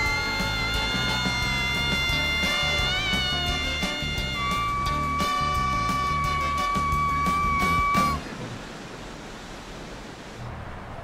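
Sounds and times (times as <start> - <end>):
woman screaming: 0.0 - 8.1
background music with beat: 0.0 - 8.2.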